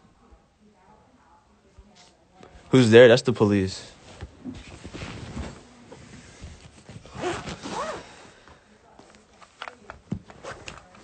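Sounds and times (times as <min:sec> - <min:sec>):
rustling handling noise: 0:03.7 - 0:08.0, 0:08.9 - 0:11.0.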